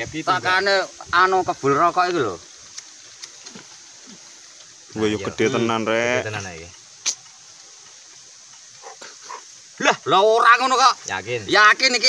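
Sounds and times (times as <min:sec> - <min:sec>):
faint high-pitched outdoor hiss: 0:00.0 - 0:12.0.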